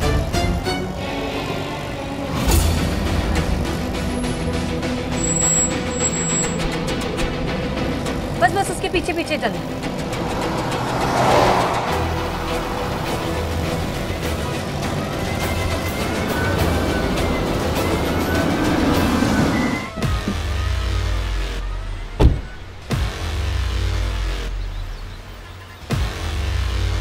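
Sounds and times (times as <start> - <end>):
dramatic background score: 0.0 - 25.3
background music: 0.0 - 27.0
car driving off: 0.0 - 27.0
deep bass drone: 9.5 - 27.0.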